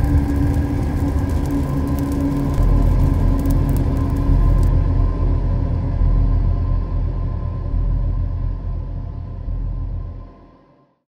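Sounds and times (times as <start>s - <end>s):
deep rumbling drone: 0.0s - 10.7s.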